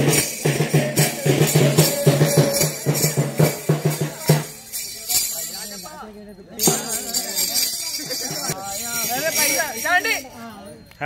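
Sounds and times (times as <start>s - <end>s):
high metallic jingling: 0.0s - 11.0s
people talking at once: 0.0s - 11.0s.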